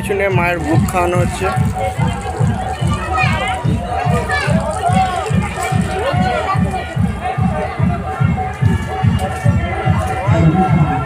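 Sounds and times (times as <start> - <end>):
deep drum beat over loudspeaker: 0.0 - 11.0.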